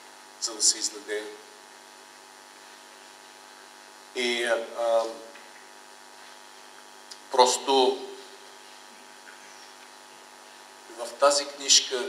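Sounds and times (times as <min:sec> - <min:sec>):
faint sound system hiss: 0:00.0 - 0:12.0
man speaking through a microphone: 0:00.4 - 0:01.4, 0:04.2 - 0:05.4, 0:07.3 - 0:08.4, 0:10.9 - 0:12.0.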